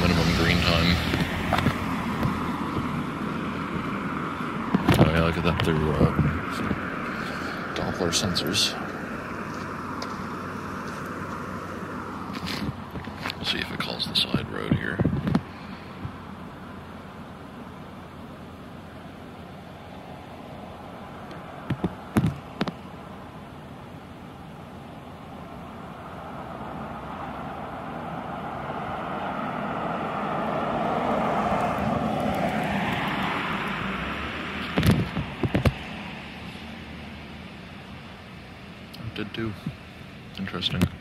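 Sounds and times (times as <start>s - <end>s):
road vehicle passing: 0.0s - 41.0s.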